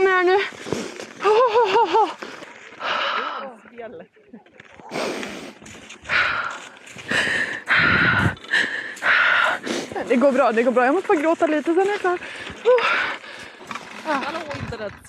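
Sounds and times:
person breathing heavily: 2.0s - 3.6s, 4.8s - 10.3s, 12.2s - 13.8s.

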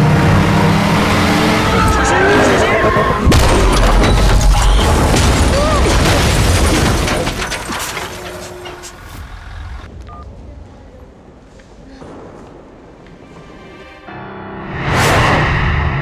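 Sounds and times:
loud car crash: 1.8s - 9.5s
debris clattering: 3.2s - 9.2s.

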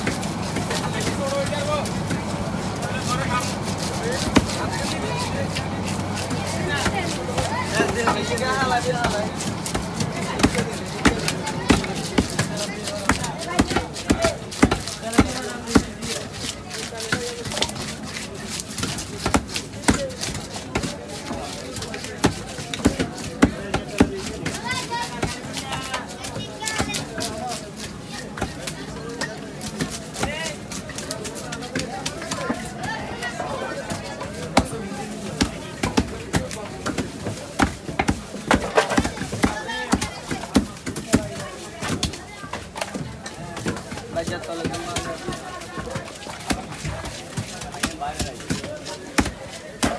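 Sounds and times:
knife chopping fish on wood: 3.7s - 49.9s.

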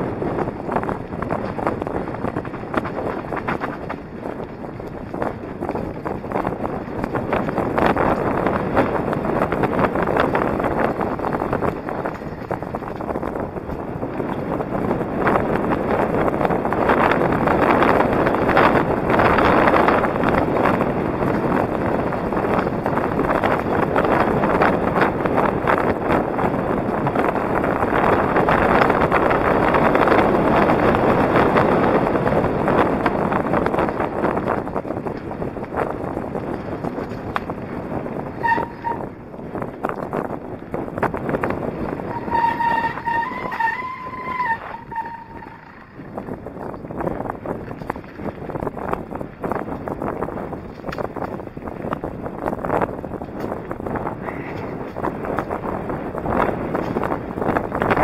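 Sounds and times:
mountain bike rattling on gravel: 0.0s - 58.0s
wind buffeting microphone: 0.0s - 58.0s
high squeal: 38.4s - 39.1s, 42.1s - 45.9s.

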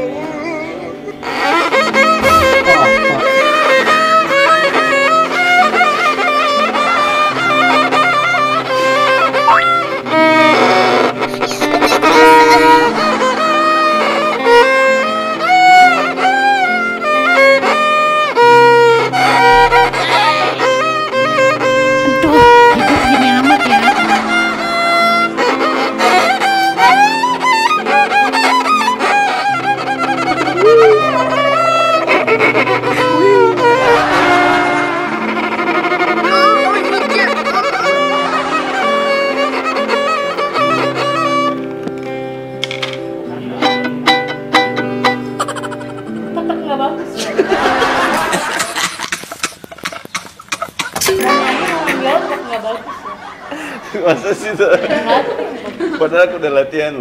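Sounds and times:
violin playing with vibrato: 0.0s - 42.6s, 43.4s - 46.4s, 51.0s - 52.7s
sustained accompaniment chords: 1.8s - 5.6s, 51.1s - 53.9s.

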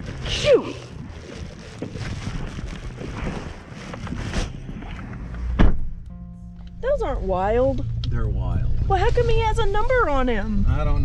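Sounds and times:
wind inside pickup cab: 0.0s - 11.0s
loud thump: 5.5s - 6.0s.

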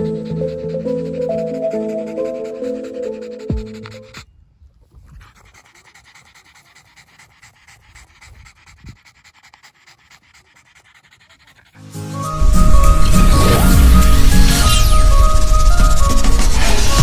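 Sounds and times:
background music: 0.0s - 4.1s, 11.8s - 17.0s
dog panting: 0.0s - 11.8s, 12.6s - 17.0s.

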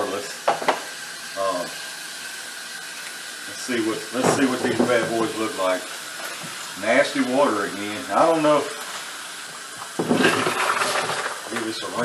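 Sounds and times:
water splashing in a sink: 0.0s - 12.0s.

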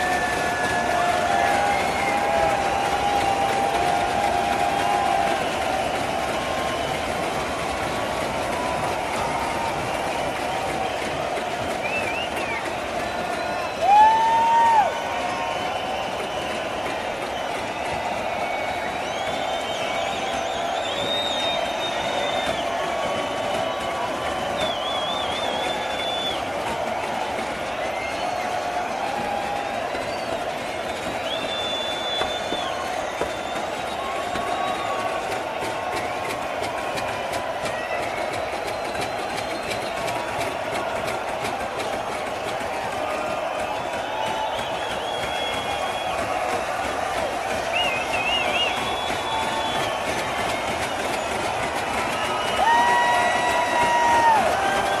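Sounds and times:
crowd cheering and shouting: 0.0s - 55.0s
shrill whistles: 0.0s - 55.0s.

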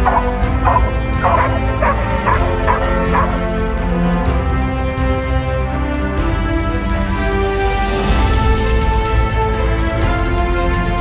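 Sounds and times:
dog barking: 0.0s - 3.5s.

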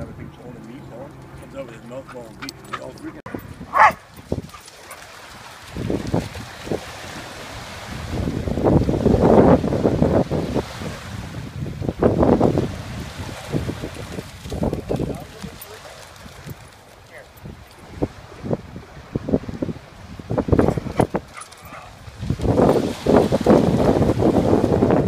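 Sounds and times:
water lapping at shoreline: 0.0s - 25.0s
wind buffeting microphone: 0.0s - 25.0s.

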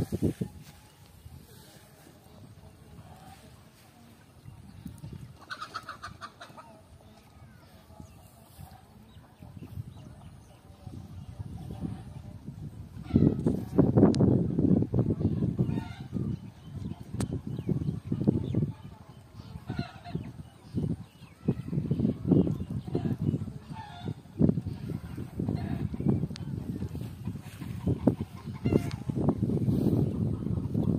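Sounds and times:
hen clucking: 5.1s - 7.0s, 19.4s - 20.5s, 22.5s - 30.9s.

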